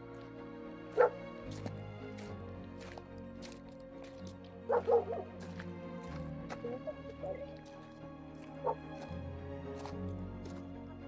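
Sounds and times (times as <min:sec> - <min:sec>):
background music: 0:00.0 - 0:11.0
dog barking: 0:01.0 - 0:01.2, 0:04.7 - 0:05.3.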